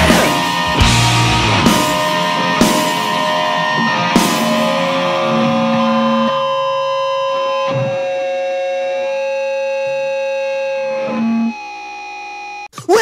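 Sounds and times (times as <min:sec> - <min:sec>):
electric guitar ringing chords: 0:00.0 - 0:12.7.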